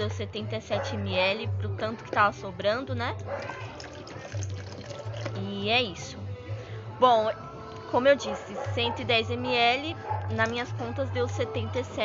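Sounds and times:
water pouring into plastic cup: 3.3 - 5.5.

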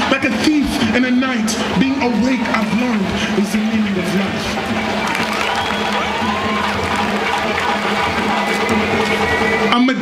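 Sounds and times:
audience applause and cheering: 0.0 - 10.0
live band playing: 0.0 - 10.0.

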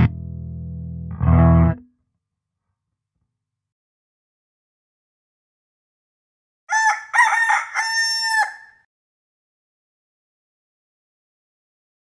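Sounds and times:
rooster crowing: 6.7 - 8.8.

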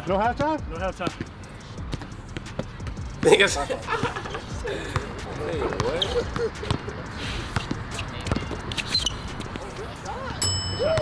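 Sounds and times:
basketball bouncing on hard court: 1.8 - 3.0, 7.6 - 8.8.

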